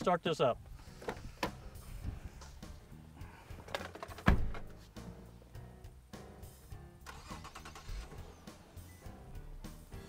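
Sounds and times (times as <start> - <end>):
car door thumping shut: 4.2 - 4.7.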